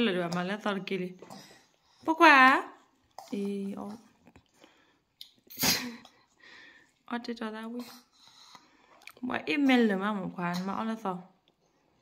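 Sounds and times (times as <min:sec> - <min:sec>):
person sneezing: 0:05.5 - 0:06.1.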